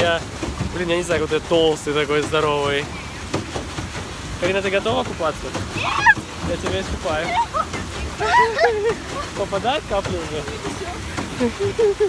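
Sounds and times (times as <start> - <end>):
wind and water hiss: 0.0 - 12.0.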